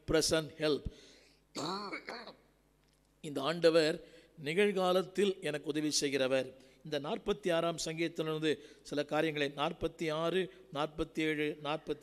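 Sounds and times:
man clearing his throat: 1.6s - 2.4s.

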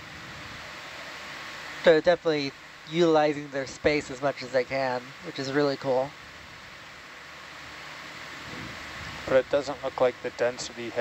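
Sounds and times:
steady background hiss: 0.0s - 11.0s
person speaking: 1.8s - 6.1s.

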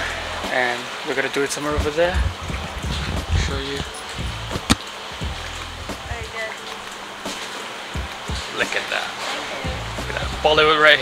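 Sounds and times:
low outdoor rumble: 1.7s - 6.5s.

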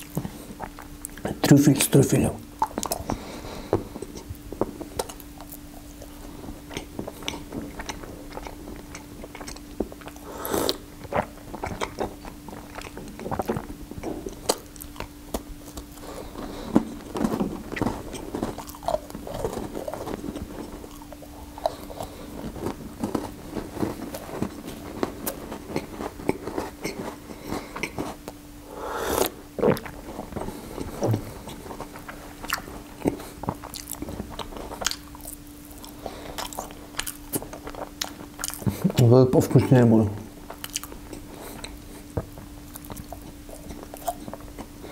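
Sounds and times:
close-miked chewing and biting: 0.0s - 1.4s, 2.6s - 28.4s, 29.2s - 39.1s, 40.3s - 44.9s
faint low hum: 0.0s - 44.9s.

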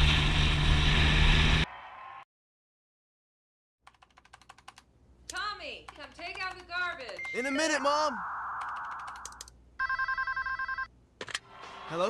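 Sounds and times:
sharp clicks: 3.9s - 7.5s, 8.6s - 9.6s
telephone ringing electronic trill: 7.2s - 10.9s.

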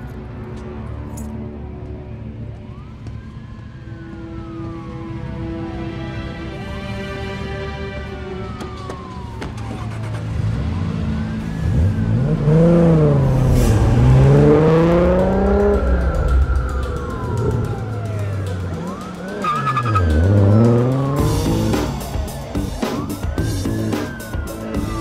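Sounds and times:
film score: 0.0s - 25.0s
police siren wailing: 1.3s - 25.0s
car engine revving: 8.4s - 24.2s.

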